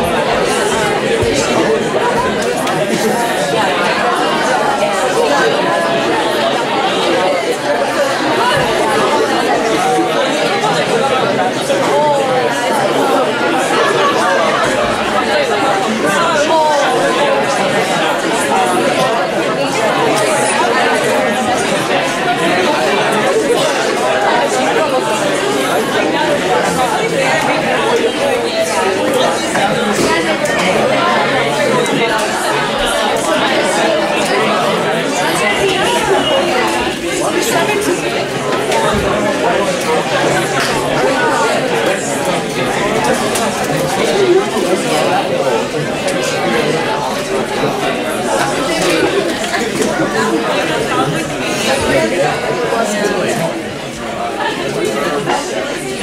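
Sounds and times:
babble of many voices: 0.0s - 56.0s.

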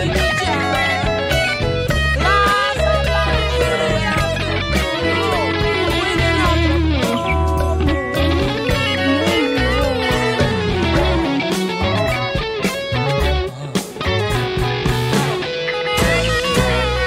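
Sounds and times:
electric guitar lead lines: 0.0s - 17.0s
rock song with bass and percussion: 0.0s - 17.0s.

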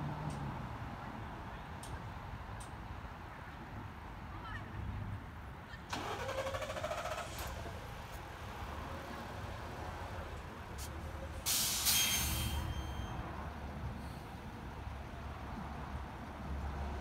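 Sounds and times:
bus running at low speed: 0.0s - 17.0s
short burst of air: 10.8s - 12.7s
air brakes hissing: 10.8s - 13.2s.

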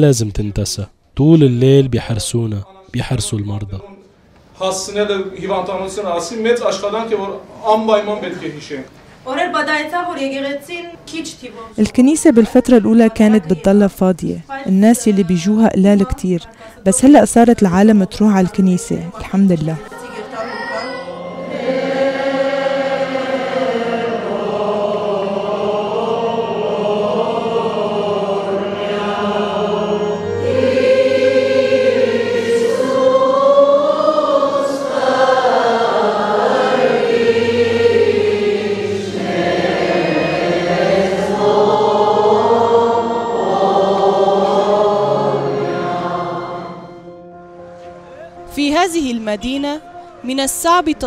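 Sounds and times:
choir singing a slow chant: 19.9s - 47.7s.

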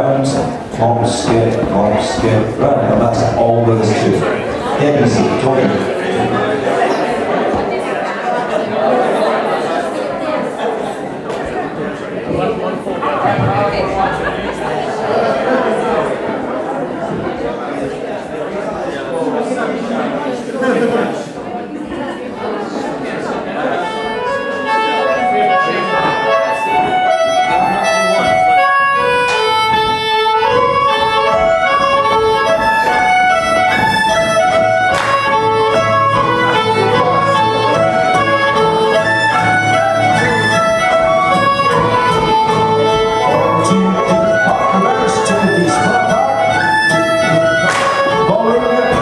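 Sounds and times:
dance band with fiddles: 0.0s - 7.8s, 23.6s - 49.0s.

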